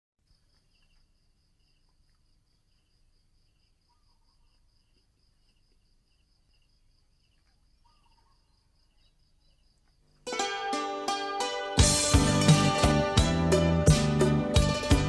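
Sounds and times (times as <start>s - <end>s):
insect chirp: 0.2s - 11.5s
insect trilling: 2.7s - 10.4s.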